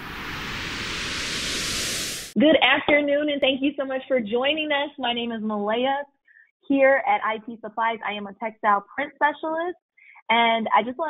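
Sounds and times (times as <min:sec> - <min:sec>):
whoosh sound effect: 0:00.0 - 0:02.4.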